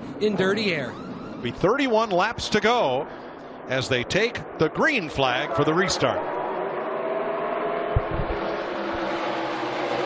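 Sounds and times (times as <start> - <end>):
racing car engines at full throttle: 0.0 - 10.0
brief low thump: 7.9 - 8.4.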